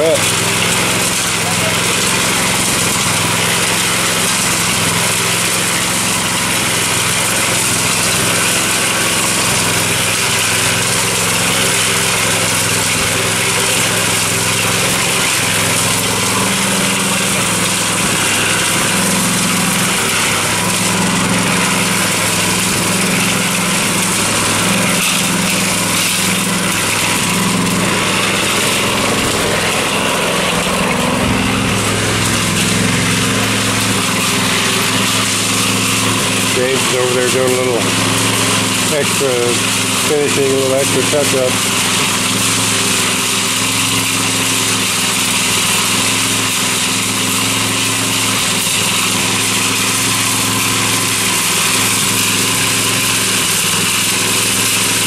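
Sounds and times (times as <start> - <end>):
cement mixer engine running: 0.0 - 55.0.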